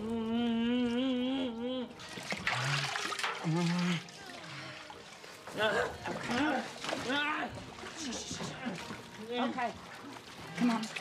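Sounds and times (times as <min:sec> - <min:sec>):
water splashing in metal tub: 0:02.0 - 0:11.0.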